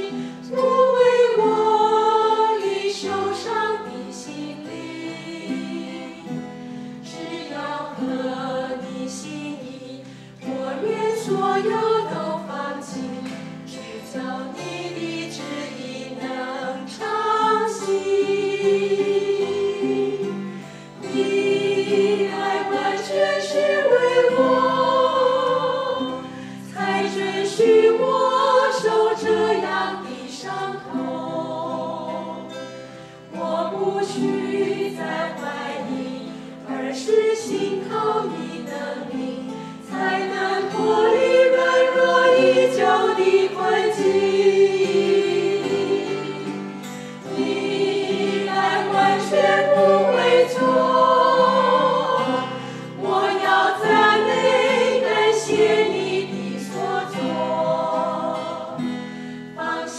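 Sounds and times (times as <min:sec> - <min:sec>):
group singing worship song: 0:00.0 - 0:59.9
strummed acoustic guitars: 0:00.0 - 0:59.9.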